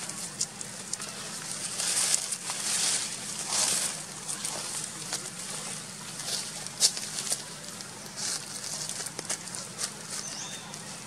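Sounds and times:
macaques chewing twigs and leaves: 0:00.0 - 0:11.0.

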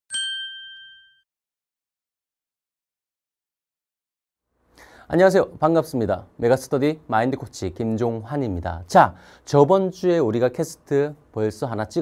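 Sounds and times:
bright ding chime: 0:00.1 - 0:01.3.

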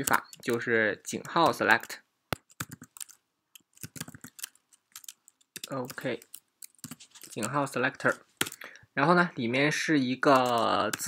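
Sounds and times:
computer keyboard key clicks: 0:01.3 - 0:07.5.

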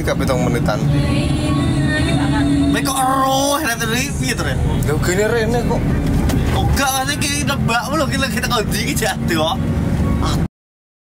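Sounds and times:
bus rumbling on road: 0:00.0 - 0:10.5
passengers talking: 0:00.0 - 0:10.5.

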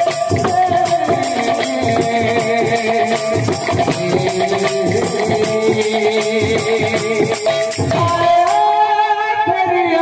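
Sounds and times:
hand drum strokes: 0:00.0 - 0:08.8.

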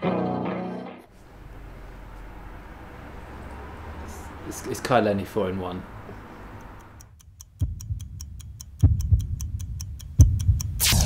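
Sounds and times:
clock-like ticking: 0:06.6 - 0:11.0.

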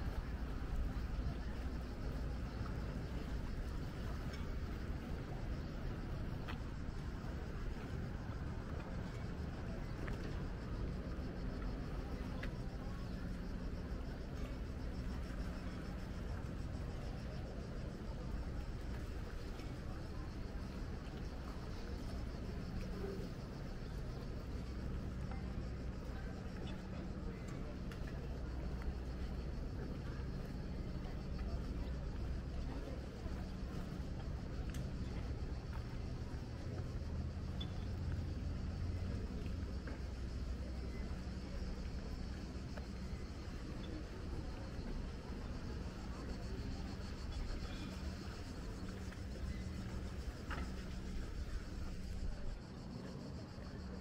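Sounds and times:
faint voices of people: 0:00.0 - 0:54.0.

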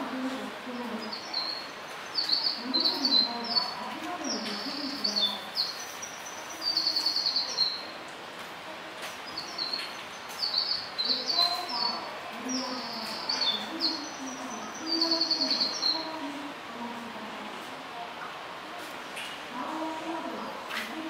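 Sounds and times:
faint distant voices: 0:00.0 - 0:21.0
small birds chirping: 0:00.1 - 0:08.0, 0:09.0 - 0:16.4.

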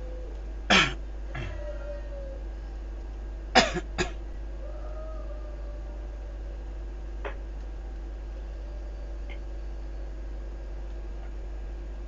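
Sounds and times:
low electrical hum: 0:00.0 - 0:12.0
person coughing: 0:00.7 - 0:01.6, 0:03.6 - 0:04.2.

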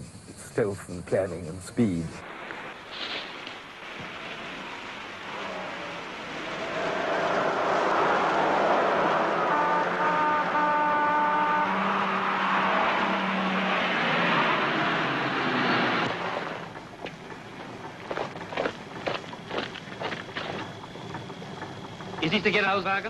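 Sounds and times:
car engine running: 0:12.2 - 0:23.0.

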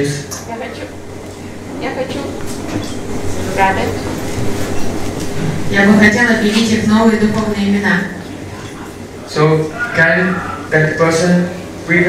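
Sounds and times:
rumbling room noise: 0:00.0 - 0:12.0.

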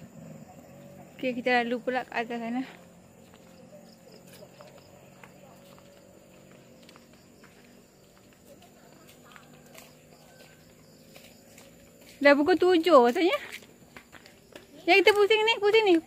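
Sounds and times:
outdoor background noise: 0:00.0 - 0:16.0
footsteps on pavement: 0:00.5 - 0:16.0.

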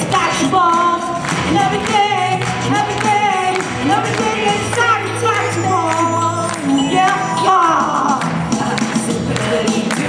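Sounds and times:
music with bass and beat: 0:00.0 - 0:10.0
woman singing: 0:00.0 - 0:10.0.

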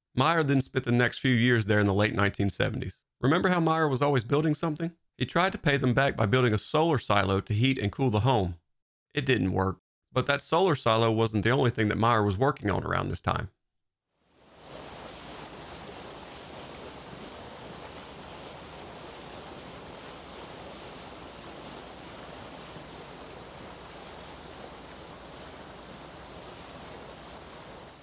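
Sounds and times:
churning sea water rushing: 0:14.3 - 0:28.0.

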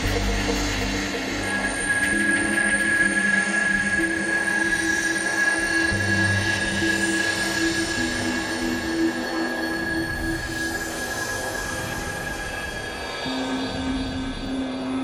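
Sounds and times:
minimal electronic music: 0:00.0 - 0:03.5.

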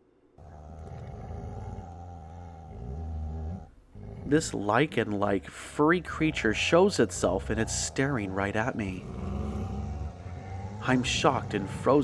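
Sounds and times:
low beast growl: 0:00.4 - 0:12.0.

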